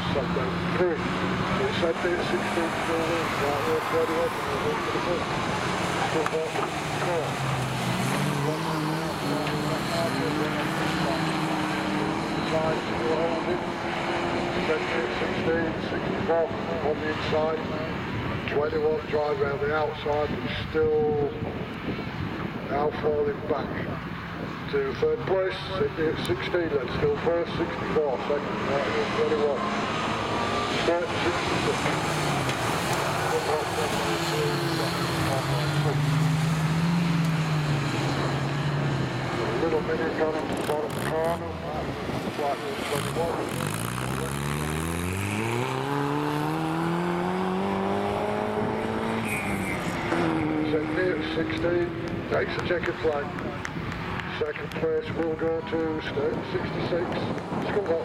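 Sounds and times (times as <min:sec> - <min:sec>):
racing car engines: 0:00.0 - 0:58.0.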